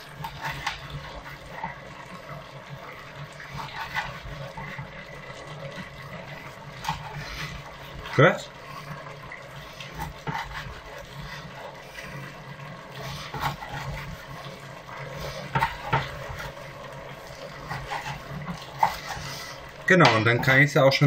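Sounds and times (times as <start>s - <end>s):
knife slicing meat: 3.5s - 4.4s, 6.8s - 7.6s, 9.6s - 12.2s, 12.9s - 14.4s, 15.1s - 16.6s, 17.2s - 19.6s.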